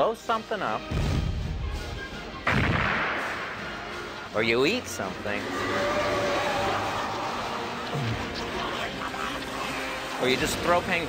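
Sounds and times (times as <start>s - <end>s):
comic explosion boom: 2.4s - 3.6s.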